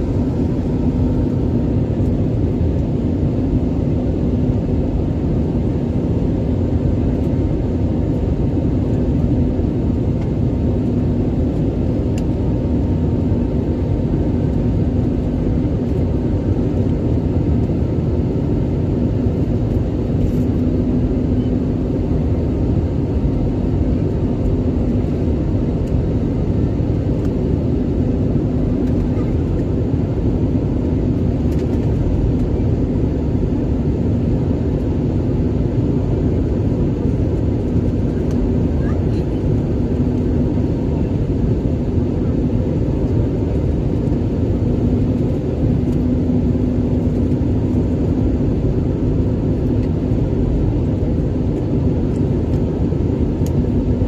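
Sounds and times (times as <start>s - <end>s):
airliner cabin engine rush: 0.0s - 54.0s
low steady hum: 0.0s - 54.0s.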